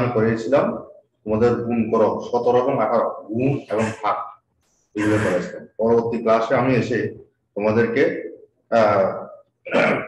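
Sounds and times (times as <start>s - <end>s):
man talking: 0.0s - 4.4s, 5.0s - 9.4s.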